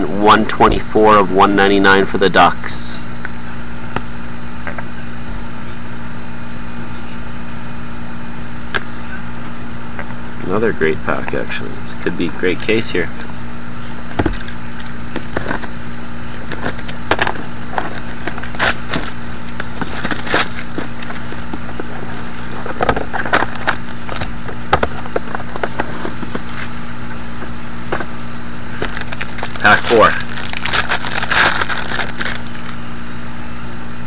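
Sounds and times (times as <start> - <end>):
low hum: 0.0 - 34.0
packaging tearing and crinkling: 16.5 - 26.8, 28.8 - 32.8
cardboard box being opened: 16.8 - 26.8.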